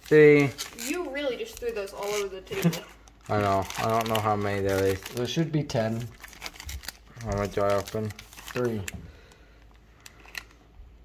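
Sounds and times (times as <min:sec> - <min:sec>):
foil card packs rustling: 0:00.0 - 0:10.7.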